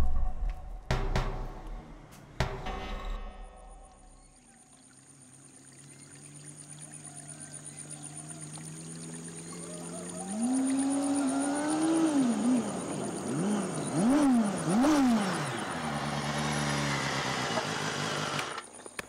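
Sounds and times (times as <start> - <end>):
motorcycle engine revving and idling: 7.9 - 18.7.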